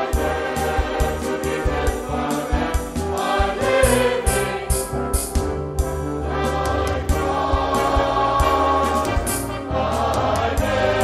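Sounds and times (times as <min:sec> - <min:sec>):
mixed choir singing a hymn: 0:00.0 - 0:05.3, 0:06.2 - 0:11.0
band accompaniment: 0:00.0 - 0:11.0.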